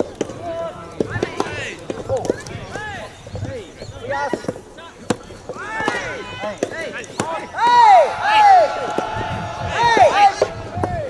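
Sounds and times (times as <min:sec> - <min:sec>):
players shouting: 0:00.0 - 0:11.0
tennis racket hitting ball: 0:04.2 - 0:07.8.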